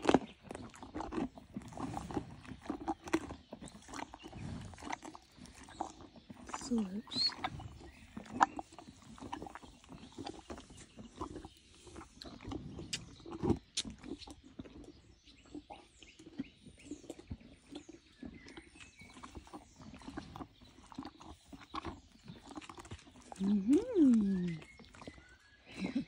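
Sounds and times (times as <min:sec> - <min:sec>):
horse mouth clicks and rustles: 0:00.0 - 0:26.0
horse breathing: 0:00.6 - 0:15.2.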